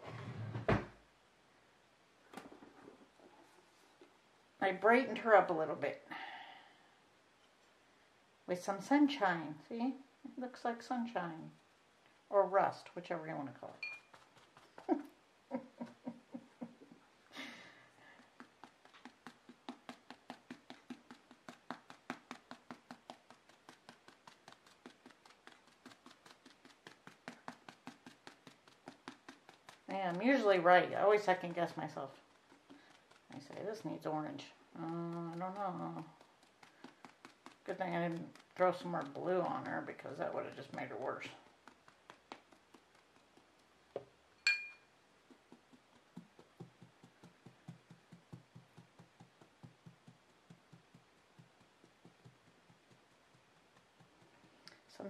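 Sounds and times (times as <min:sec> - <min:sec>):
sponge tapping on hollow vinyl: 0:18.0 - 0:44.2, 0:45.0 - 0:55.0
glass clink: 0:44.4 - 0:44.9.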